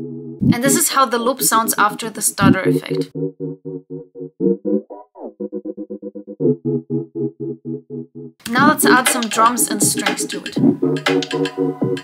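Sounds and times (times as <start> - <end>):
stuttering synth chord loop: 2.5 - 12.0.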